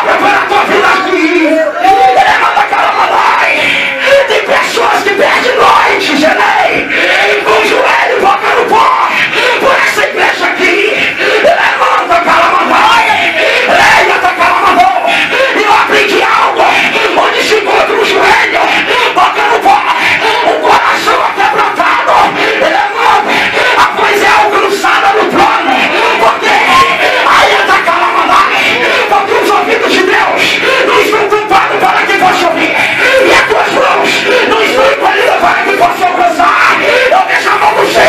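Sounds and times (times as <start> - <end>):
man shouting into a microphone: 0.0 - 38.0
many voices praying aloud: 0.0 - 38.0.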